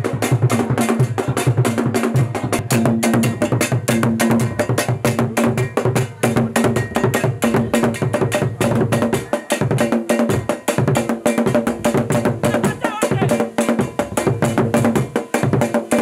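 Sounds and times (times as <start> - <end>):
percussion-led music: 0.0 - 16.0.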